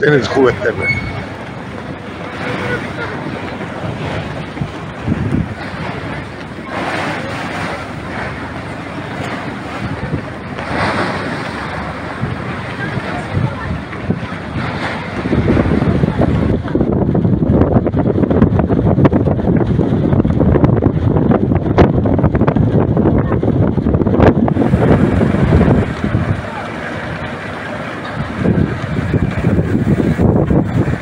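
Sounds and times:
choppy sea waves: 0.0s - 31.0s
wind buffeting microphone: 0.0s - 31.0s.

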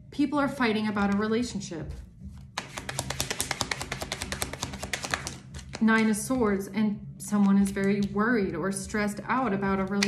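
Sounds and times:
cards being shuffled: 1.9s - 6.1s.

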